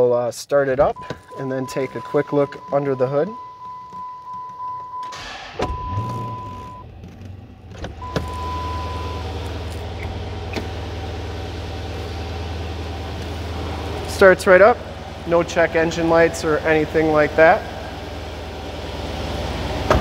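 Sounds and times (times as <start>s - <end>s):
car engine starting and idling: 0.7s - 20.0s
dashboard warning chime: 0.9s - 6.9s, 8.0s - 9.3s.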